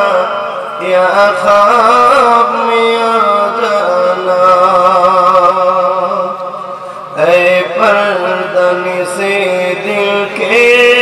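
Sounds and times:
man chanting through loudspeakers: 0:00.0 - 0:11.0.

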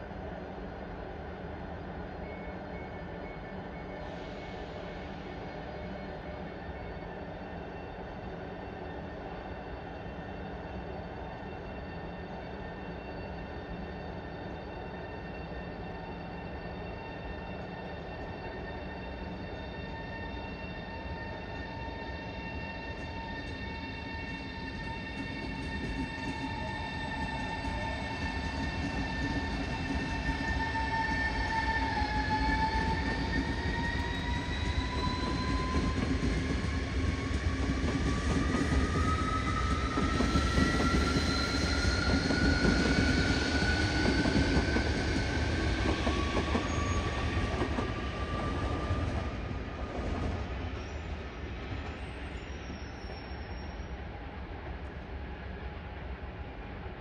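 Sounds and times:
electric train traction whine: 0:01.8 - 0:52.1
train wheels rumbling: 0:22.9 - 0:52.2.

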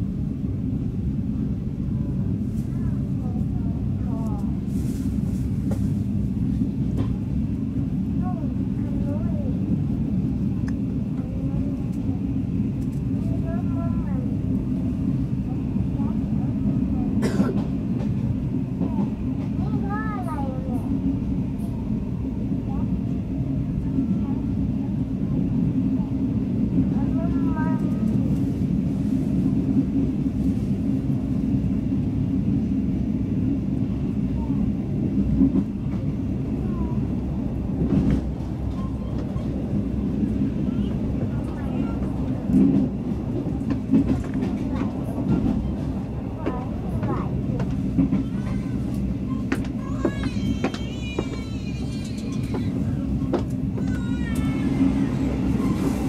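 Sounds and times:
train carriage rumble: 0:00.0 - 0:56.0
faint voices: 0:34.0 - 0:56.0.

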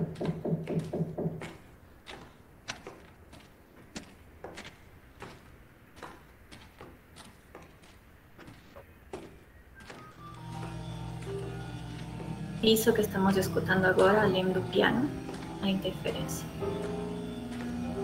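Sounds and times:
footsteps walking: 0:00.0 - 0:18.0
piano notes: 0:10.0 - 0:18.0.

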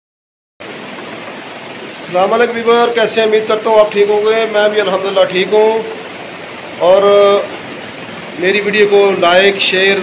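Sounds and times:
steady hiss: 0:00.6 - 0:10.0.

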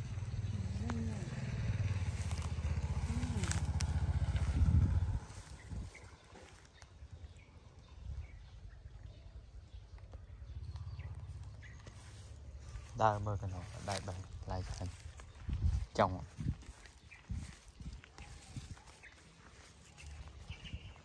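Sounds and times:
vehicle engine humming: 0:00.0 - 0:07.8, 0:09.4 - 0:21.0.

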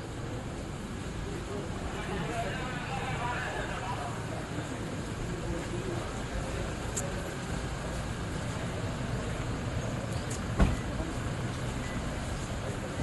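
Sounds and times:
motor vehicle rumble: 0:00.0 - 0:13.0
sharp thump: 0:10.6 - 0:10.9.

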